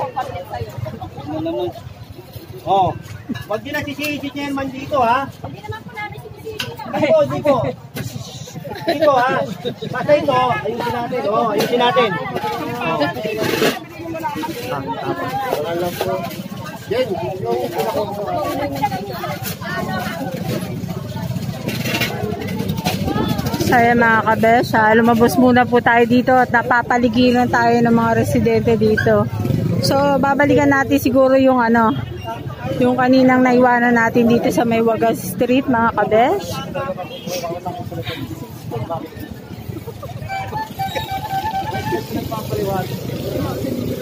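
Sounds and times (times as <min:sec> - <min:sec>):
crowd voices: 0:00.0 - 0:44.0
traffic rumble: 0:00.0 - 0:44.0
people talking: 0:08.1 - 0:44.0.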